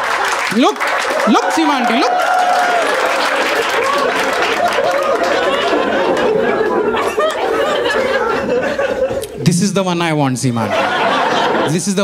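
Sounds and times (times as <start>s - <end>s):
audience laughing: 3.0s - 9.4s, 10.6s - 12.0s.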